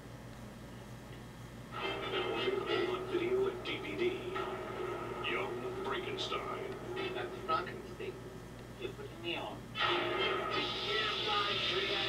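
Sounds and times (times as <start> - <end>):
trailer voice from tape: 1.7 - 12.0.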